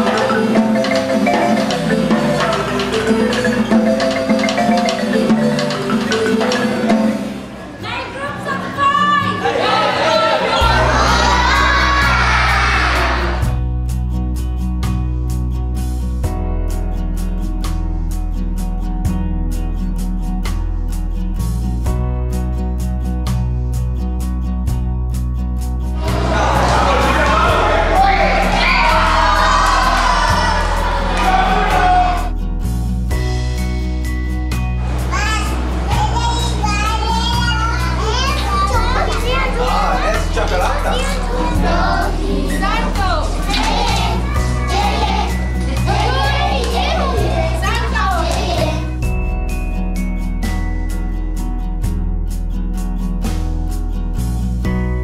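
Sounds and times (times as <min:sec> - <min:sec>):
children chattering and calling out: 0:06.3 - 0:13.4, 0:34.9 - 0:49.0
boys cheering and shouting: 0:07.8 - 0:13.6, 0:26.0 - 0:32.4, 0:35.0 - 0:48.9
background music with bass: 0:10.6 - 0:55.0.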